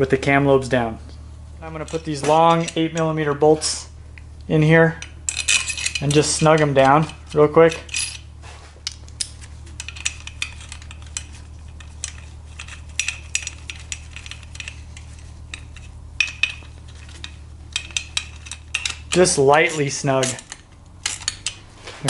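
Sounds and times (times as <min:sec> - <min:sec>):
metallic clicks of bolts threading: 0:04.9 - 0:08.2, 0:08.9 - 0:21.7.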